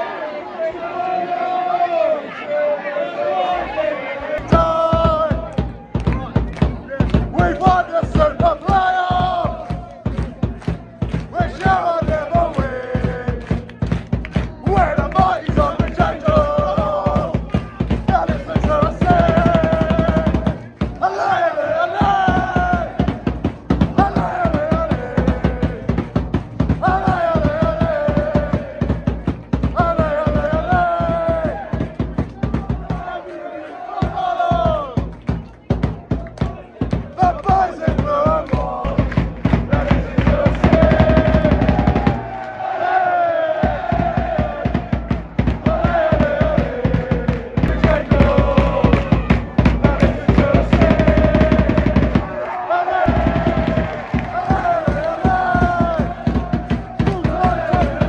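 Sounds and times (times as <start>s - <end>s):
crowd singing a chant: 0.0s - 35.6s, 36.2s - 58.0s
steady beat: 4.4s - 58.0s.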